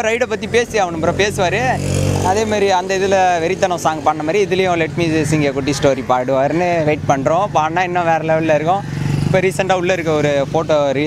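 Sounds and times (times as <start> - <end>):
man speaking into microphone: 0.0 - 11.0
vehicle engine rumble: 0.0 - 11.0.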